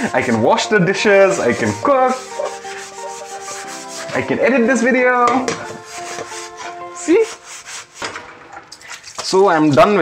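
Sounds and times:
scouring pad scrubbing metal pan: 0.0s - 8.5s.

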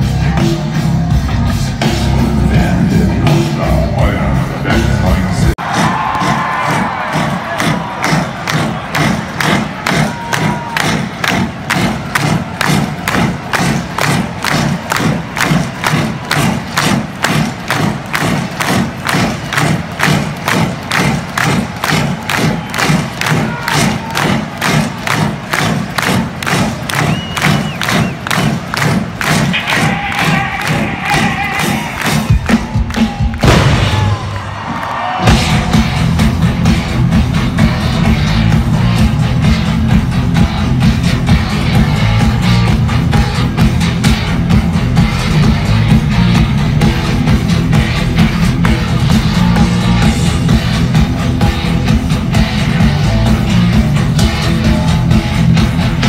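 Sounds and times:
crowd cheering and shouting: 0.0s - 56.0s
full band playing: 0.0s - 56.0s
pounding beat over speakers: 0.0s - 56.0s.

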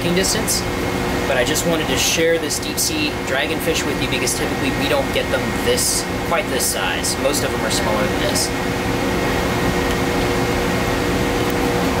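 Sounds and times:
ship machinery and ventilation hum: 0.0s - 12.0s.

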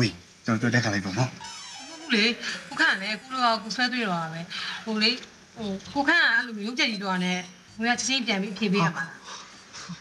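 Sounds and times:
man speaking with wavering pitch: 8.8s - 9.1s.

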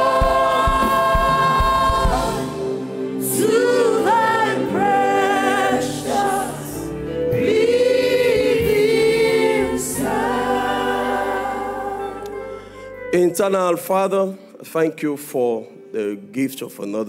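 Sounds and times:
choir singing gospel music: 0.0s - 13.0s.

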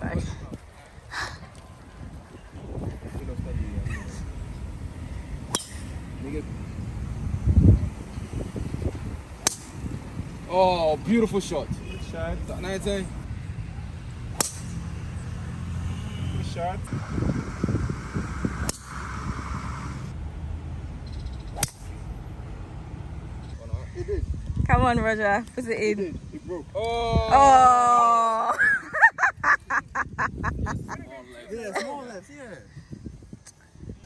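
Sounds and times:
golf club striking ball: 5.5s - 6.0s, 9.4s - 9.8s, 14.3s - 14.9s, 18.6s - 19.2s, 21.4s - 22.0s.

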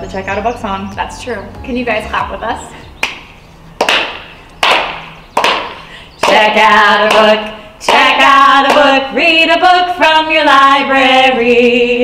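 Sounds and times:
hand claps: 3.0s - 3.2s, 3.8s - 8.9s.

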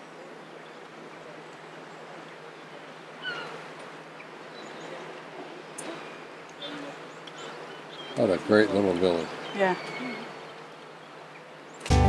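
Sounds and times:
faint distant sounds: 0.0s - 11.8s
low background hiss: 0.0s - 11.8s.

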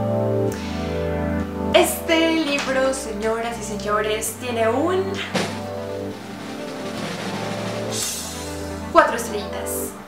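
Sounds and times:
instrumental background music: 0.0s - 10.0s
sharp hit: 5.3s - 8.8s
rushing swoosh: 5.3s - 8.9s.

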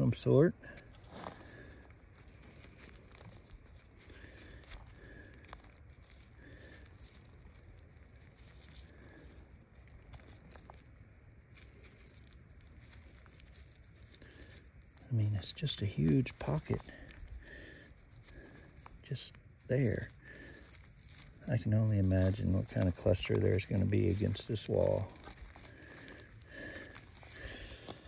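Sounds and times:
gloves rustling and scraping rock: 0.0s - 28.0s.

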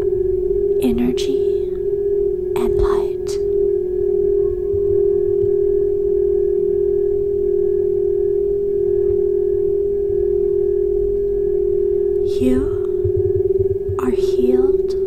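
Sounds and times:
crystal singing bowl ringing: 0.0s - 15.0s.

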